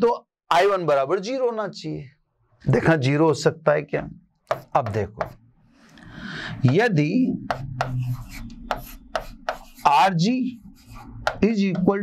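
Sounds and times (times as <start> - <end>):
chalk tapping on blackboard: 4.5 - 5.4, 6.6 - 12.0.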